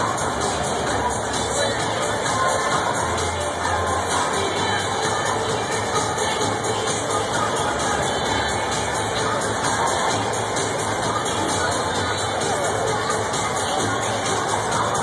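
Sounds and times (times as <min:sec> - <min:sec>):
crowd noise: 0:00.0 - 0:15.0
music over loudspeakers: 0:00.0 - 0:15.0.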